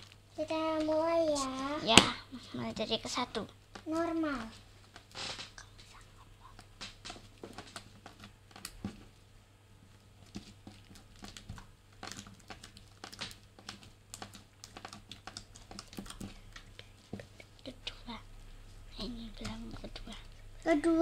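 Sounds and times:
hands squishing slime: 10.0 - 21.0.

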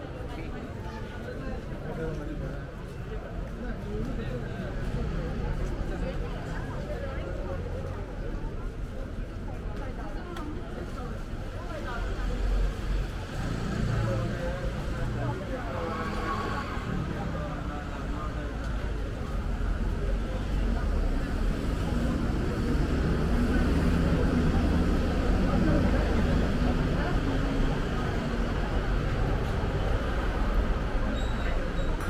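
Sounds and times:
indistinct chatter: 0.0 - 32.0
road traffic: 10.7 - 32.0.

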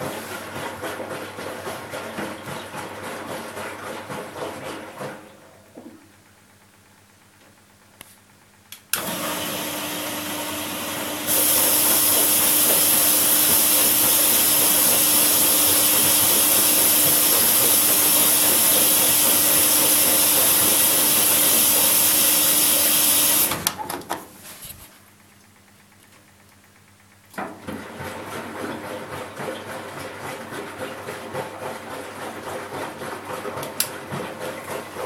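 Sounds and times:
washing machine hum: 0.0 - 35.0.

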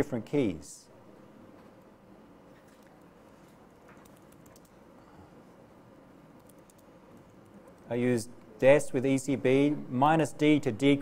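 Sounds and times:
typing on computer keyboard: 3.8 - 4.8, 6.4 - 7.8.

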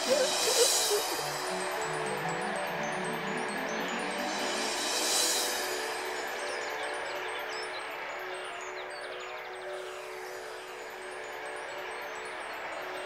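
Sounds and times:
steady held tone: 0.0 - 8.7
tinkling magic chimes: 0.0 - 13.0.

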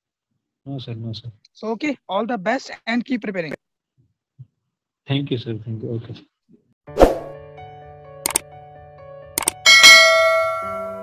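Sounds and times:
quick double click: 8.2 - 8.4, 9.4 - 9.6
bright bell chime: 9.7 - 11.0.

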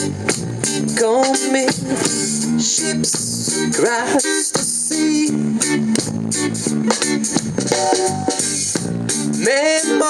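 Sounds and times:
bass guitar: 0.0 - 10.0
drum kit steady beat: 0.0 - 10.0
electric guitar: 0.0 - 10.0.

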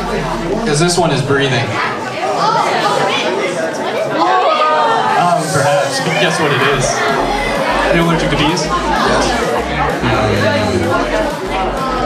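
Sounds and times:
audience chatter: 0.0 - 12.0.

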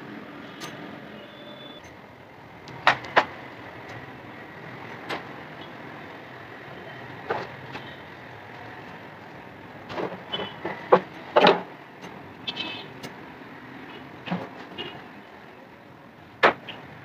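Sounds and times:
steady background noise: 0.0 - 17.0.

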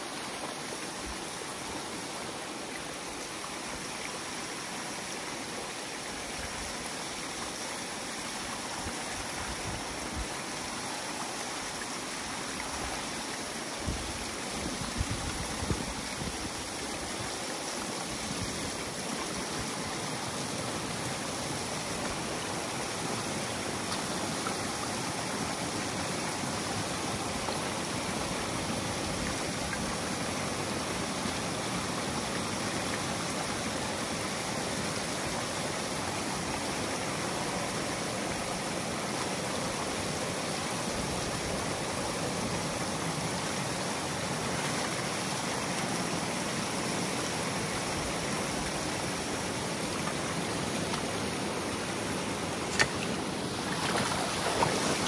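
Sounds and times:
water rushing and pouring: 47.2 - 55.0.

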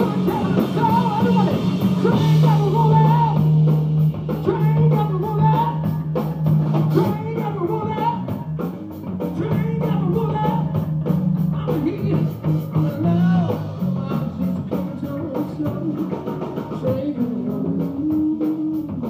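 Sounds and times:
person singing: 0.0 - 3.6, 4.4 - 6.1, 6.9 - 8.6, 9.3 - 19.0
bass guitar: 0.0 - 19.0
distorted electric guitar: 0.0 - 19.0
drum kit with cymbal beat: 0.0 - 19.0.

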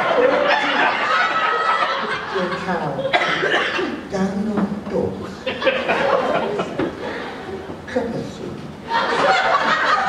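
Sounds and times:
person talking: 2.3 - 3.1, 4.0 - 5.4, 7.9 - 8.7
person coughing: 3.1 - 4.0.

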